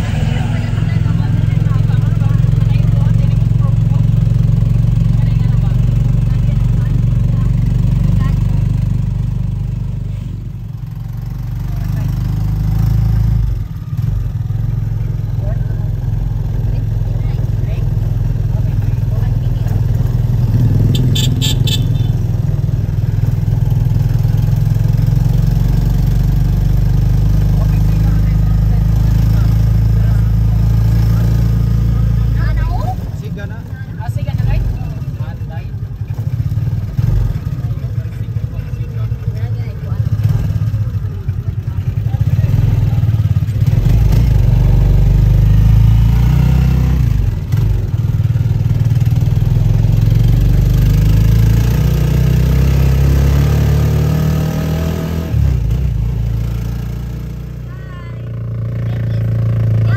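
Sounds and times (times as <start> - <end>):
vehicle engine and road rumble: 0.0 - 59.9.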